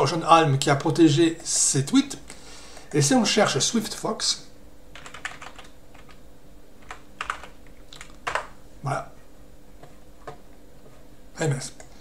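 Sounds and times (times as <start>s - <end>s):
computer keyboard typing: 4.9s - 6.2s, 6.8s - 8.6s.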